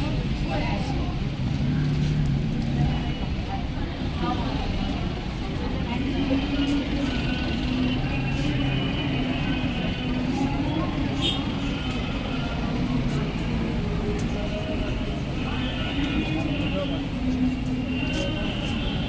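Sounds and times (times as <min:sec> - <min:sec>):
indistinct voices: 0:00.0 - 0:19.0.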